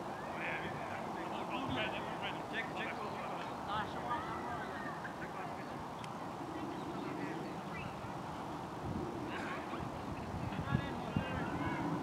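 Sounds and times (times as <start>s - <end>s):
distant voices: 0.0s - 12.0s
outdoor background noise: 0.0s - 12.0s.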